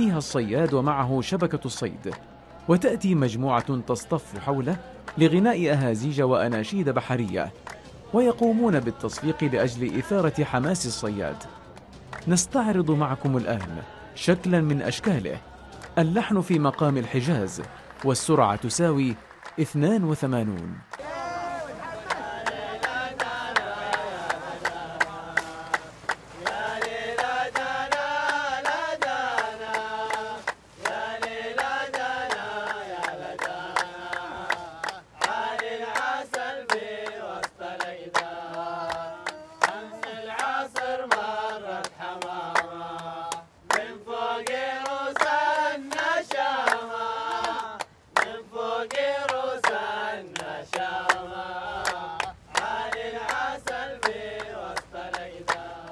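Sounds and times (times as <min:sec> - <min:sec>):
hand claps: 0:00.0 - 0:01.0, 0:01.8 - 0:02.2, 0:06.4 - 0:13.8, 0:14.6 - 0:21.2, 0:21.9 - 0:55.9
chorus singing a chant: 0:00.0 - 0:55.9.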